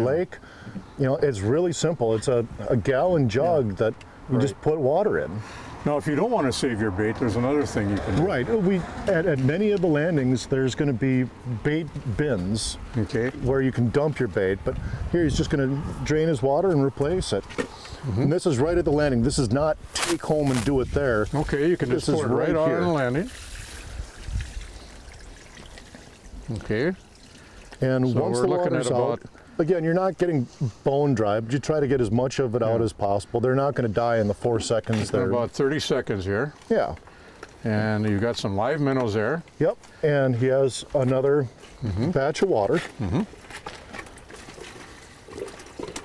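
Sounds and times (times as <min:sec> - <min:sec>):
water pouring onto pavement: 0:22.8 - 0:28.1.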